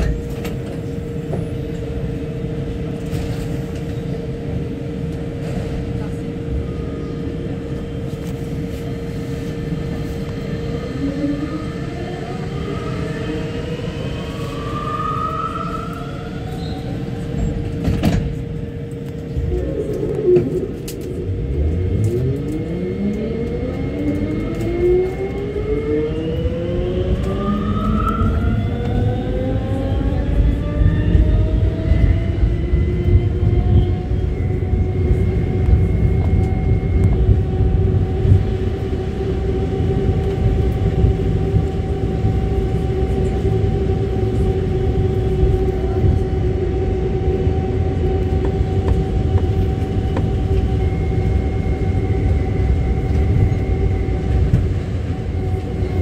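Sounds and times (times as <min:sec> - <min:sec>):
metro train motor whine: 0:00.0 - 0:56.0
train running rumble: 0:00.0 - 0:56.0.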